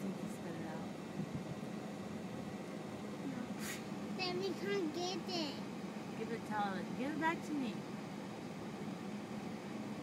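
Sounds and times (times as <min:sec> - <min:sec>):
car cabin engine hum: 0:00.0 - 0:10.0.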